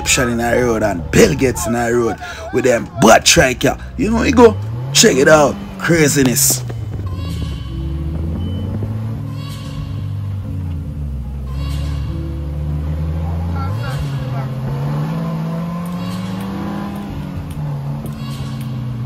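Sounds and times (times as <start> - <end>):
engine running while driving: 0.0 - 19.0
road noise: 0.0 - 19.0
wind noise: 6.6 - 10.4.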